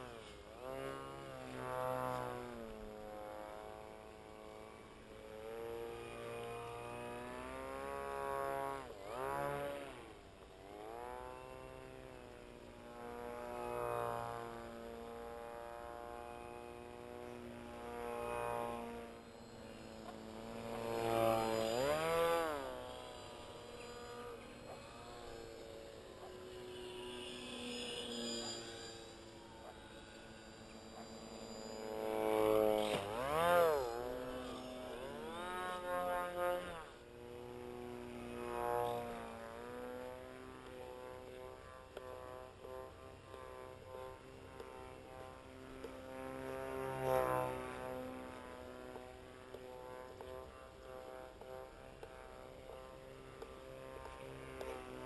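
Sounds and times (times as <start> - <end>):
electric motor and propeller whining: 0.0 - 55.0.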